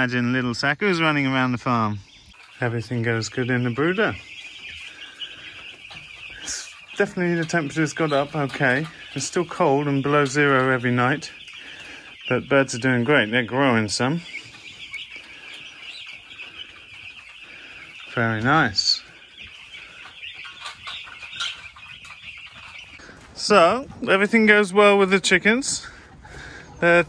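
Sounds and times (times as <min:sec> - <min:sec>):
chicks peeping: 0:00.0 - 0:27.0.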